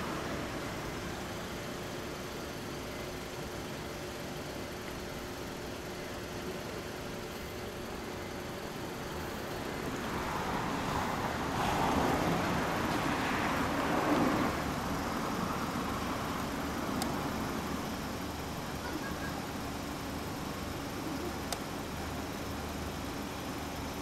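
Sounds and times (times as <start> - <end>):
steady traffic: 0.0 - 24.0
car passing: 9.5 - 17.8.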